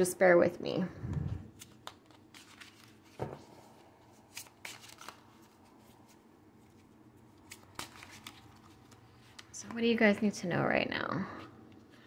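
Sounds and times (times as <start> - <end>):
cards shuffled by hand: 1.1 - 9.6.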